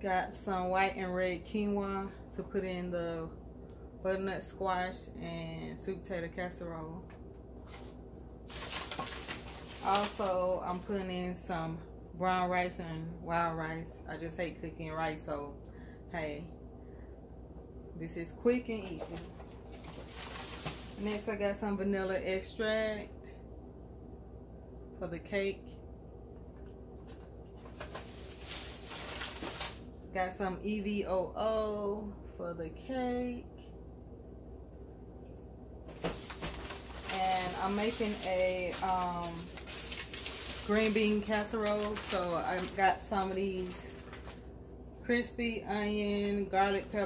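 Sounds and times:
woman speaking: 0.0 - 3.4, 4.0 - 7.0, 9.7 - 16.6, 18.0 - 19.3, 20.9 - 23.4, 25.0 - 25.7, 30.1 - 33.7, 37.1 - 39.6, 40.5 - 44.0, 45.0 - 47.0
paper bag rustling and crinkling: 7.6 - 11.2, 18.8 - 21.5, 27.0 - 30.0, 35.9 - 44.5.

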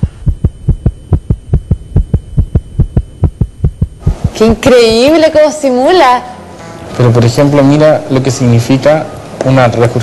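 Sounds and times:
fast regular heartbeat: 0.0 - 4.6.

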